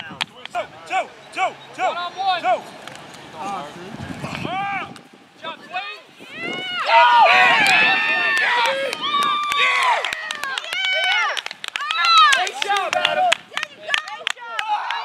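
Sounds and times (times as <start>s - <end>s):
men shouting: 0.5s - 6.0s, 6.7s - 11.3s.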